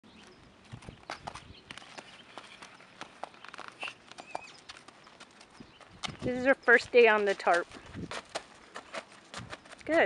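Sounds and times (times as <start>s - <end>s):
horse hooves on plastic tarp: 1.1s - 10.0s.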